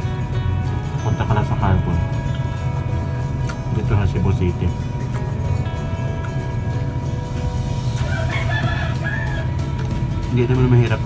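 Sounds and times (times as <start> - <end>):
steady low hum: 0.0 - 8.3
rooster crowing: 7.7 - 9.9.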